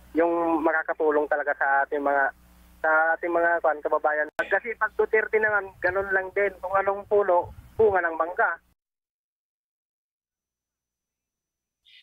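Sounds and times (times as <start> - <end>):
person talking: 0.2 - 8.7.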